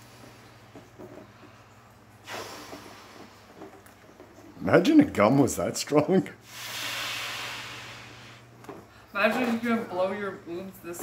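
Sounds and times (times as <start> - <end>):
sharp rush of breath: 2.2 - 3.3, 6.5 - 8.4
person blowing up balloon: 2.2 - 3.6, 6.4 - 8.4.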